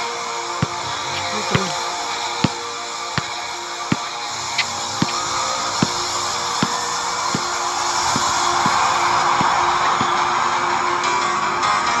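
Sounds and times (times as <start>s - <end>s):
music playing: 0.0s - 12.0s
basketball bouncing on court: 0.6s - 10.7s.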